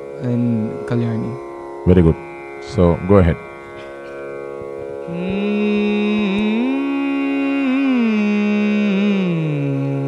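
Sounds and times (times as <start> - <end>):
electronic drone: 0.0 - 10.0
man singing held notes: 5.1 - 9.5.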